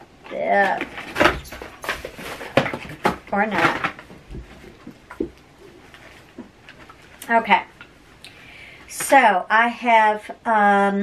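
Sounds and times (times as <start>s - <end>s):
cardboard rustling: 0.3s - 7.2s.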